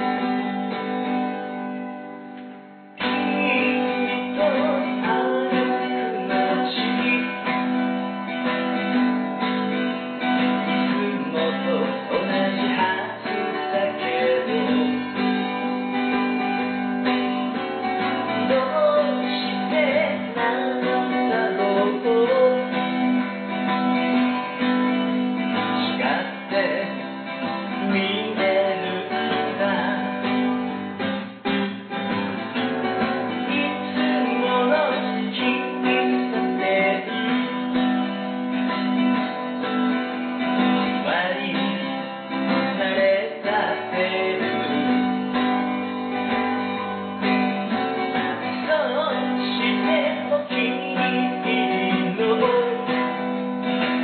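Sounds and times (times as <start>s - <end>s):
acoustic guitar strumming: 0.0s - 54.0s
person singing: 3.0s - 31.9s, 33.0s - 54.0s.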